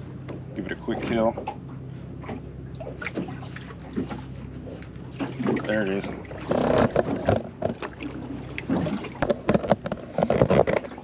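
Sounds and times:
knocks and taps on boat: 0:00.0 - 0:11.0
low steady hum: 0:00.0 - 0:11.0.

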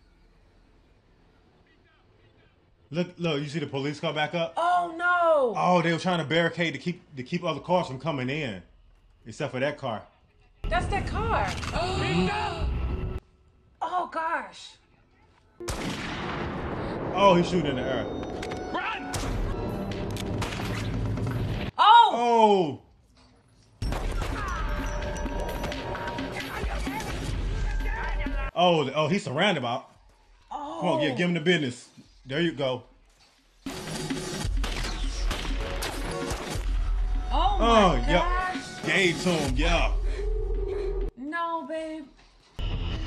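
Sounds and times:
gunfire: 0:15.6 - 0:17.2, 0:19.1 - 0:21.7, 0:33.7 - 0:37.0
gunshots: 0:15.6 - 0:17.8, 0:19.1 - 0:21.7, 0:33.7 - 0:37.1
tense music score: 0:16.3 - 0:21.7, 0:33.6 - 0:41.1.

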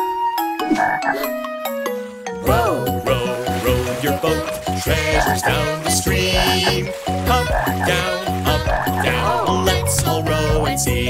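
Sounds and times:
instrumental children's song: 0:00.0 - 0:11.0
bass and drum beat: 0:02.5 - 0:11.0.

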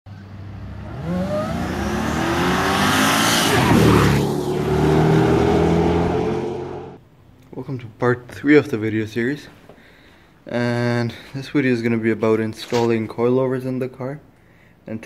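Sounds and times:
car accelerating and passing by: 0:00.1 - 0:07.0.

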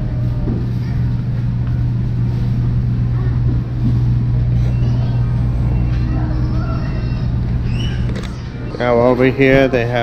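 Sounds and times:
distant shoppers' voices: 0:00.0 - 0:10.0
low supermarket hum: 0:00.0 - 0:10.0.

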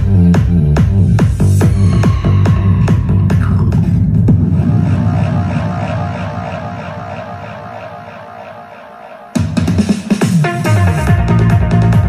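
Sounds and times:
heavy bass beat: 0:00.0 - 0:12.0.

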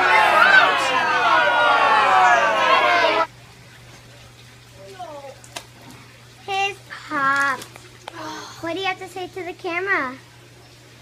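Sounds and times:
children yelling and shrieking: 0:00.0 - 0:03.3.

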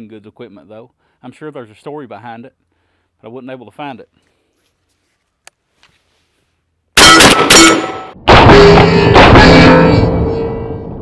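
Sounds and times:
shotgun shots: 0:07.0 - 0:08.9.

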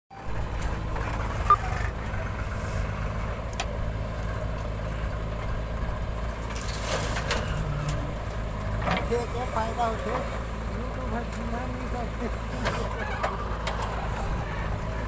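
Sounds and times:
diesel engines running: 0:00.1 - 0:15.0.

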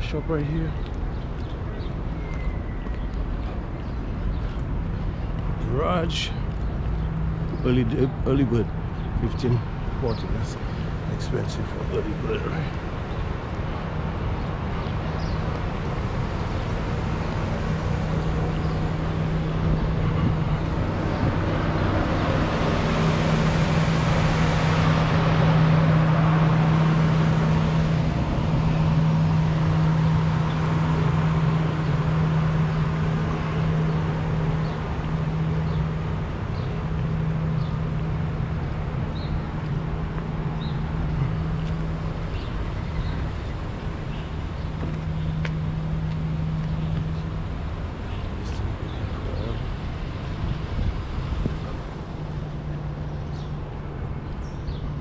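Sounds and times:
street traffic rush: 0:00.0 - 0:55.0
steady low hum: 0:03.3 - 0:55.0.

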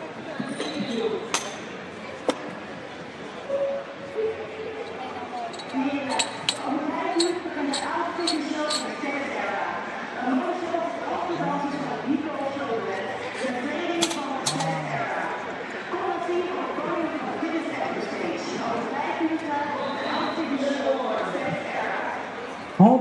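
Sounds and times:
murmured voices: 0:01.9 - 0:23.0
metallic clinks of barbell plates: 0:05.4 - 0:09.0.

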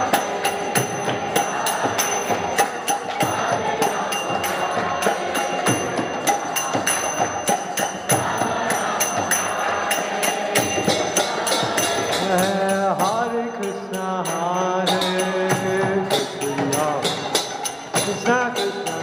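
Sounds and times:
group chanting: 0:00.0 - 0:13.2
drums: 0:00.0 - 0:19.0
hand cymbals: 0:00.0 - 0:19.0
lead voice singing: 0:00.0 - 0:19.0.

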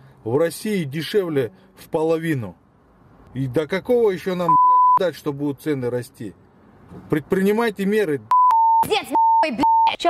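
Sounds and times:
man speaking angrily: 0:00.2 - 0:02.6
censor bleeps: 0:04.5 - 0:05.0, 0:08.3 - 0:10.0.

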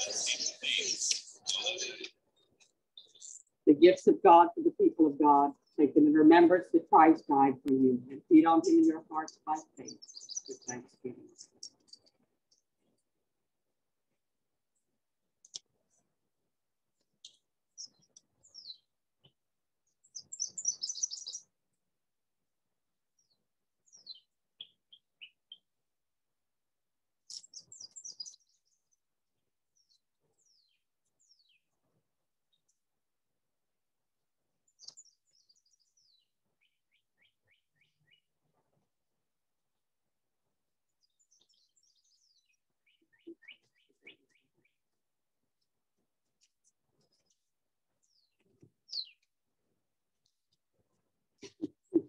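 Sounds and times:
faint birdsong twittering: 0:00.0 - 0:13.1, 0:17.0 - 0:21.9, 0:23.1 - 0:25.8, 0:27.2 - 0:32.8, 0:34.5 - 0:38.8, 0:40.8 - 0:45.7, 0:46.3 - 0:49.5
songbirds chirping and trilling: 0:00.0 - 0:13.1, 0:17.0 - 0:21.9, 0:23.1 - 0:25.8, 0:27.2 - 0:32.8, 0:34.6 - 0:38.8, 0:40.8 - 0:49.5.

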